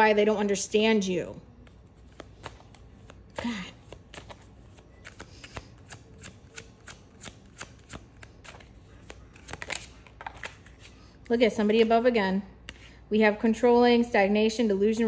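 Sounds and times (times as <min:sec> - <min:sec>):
cards being shuffled: 0:01.5 - 0:11.1.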